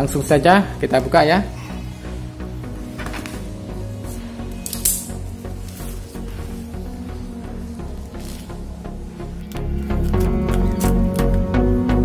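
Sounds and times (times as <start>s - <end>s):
background music: 0.0s - 12.0s
bubble wrap crackling: 2.0s - 11.5s
plastic rustling: 2.6s - 11.3s.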